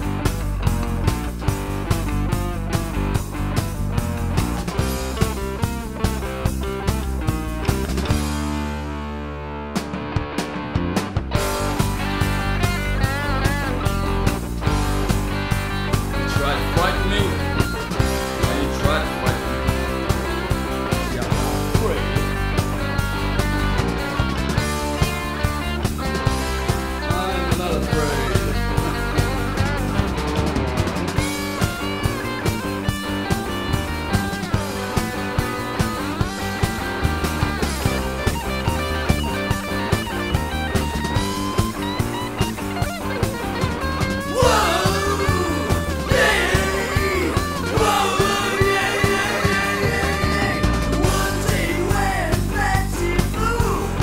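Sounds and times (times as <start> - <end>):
steady drum beat: 0.0 - 8.5, 11.0 - 54.0
rock band playing: 0.0 - 54.0.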